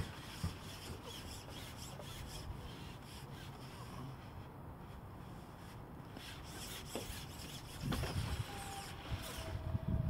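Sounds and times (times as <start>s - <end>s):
fishing pole rubbing and scraping: 0.0s - 4.4s, 5.4s - 9.6s.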